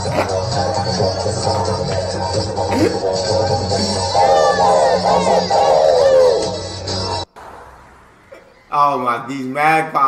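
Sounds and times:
didgeridoo drone: 0.0 - 7.2.

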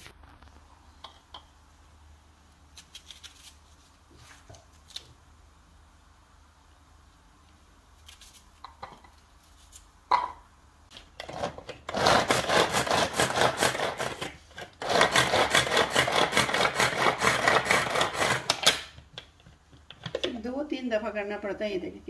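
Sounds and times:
cord food chopper rasping rattle: 11.2 - 18.8.

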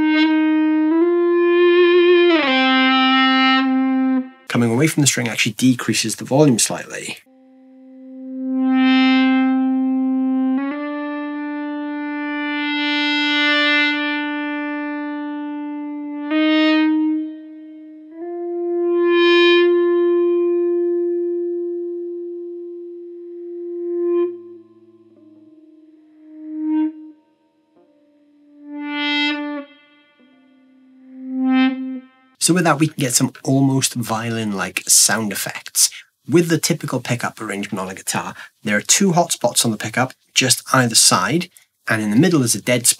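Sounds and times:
electric guitar sustained notes: 0.0 - 4.5, 7.2 - 32.4.

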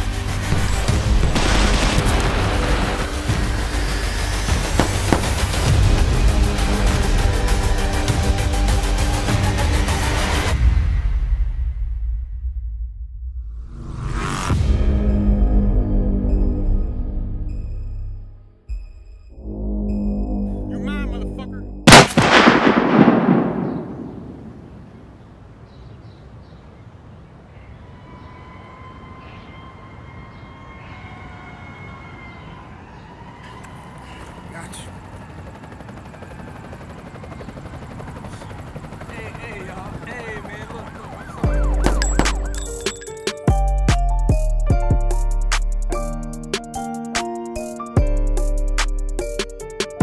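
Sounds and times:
low drone of film music: 0.0 - 22.7
loud gunshot with echo: 4.8 - 5.8, 21.9 - 24.8
wavering siren: 27.4 - 39.0, 39.8 - 43.2.

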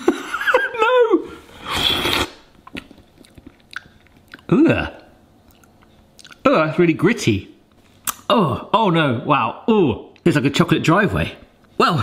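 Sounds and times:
person slurping: 1.4 - 4.5
wet chewing mouth clicks: 2.0 - 4.5, 5.4 - 6.4.

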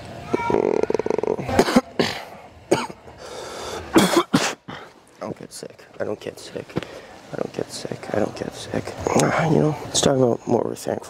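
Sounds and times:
man groaning: 0.3 - 2.2
man coughing: 1.4 - 3.0, 3.9 - 4.9.

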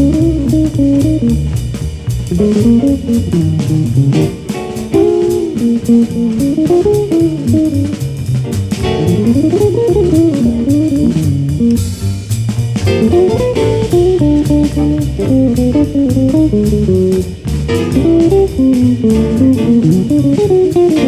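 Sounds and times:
guitar solo line: 0.0 - 1.6, 2.3 - 11.9, 12.8 - 21.0
drum kit cymbals: 0.0 - 21.0
piano: 0.0 - 21.0
plucked double bass: 0.0 - 21.0.

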